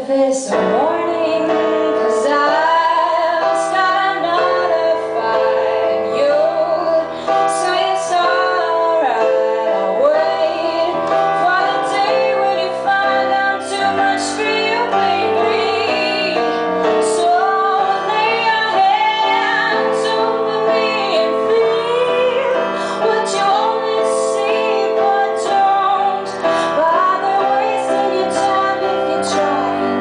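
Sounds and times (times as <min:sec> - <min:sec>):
keyboard accompaniment: 0:00.0 - 0:30.0
woman singing: 0:00.0 - 0:30.0.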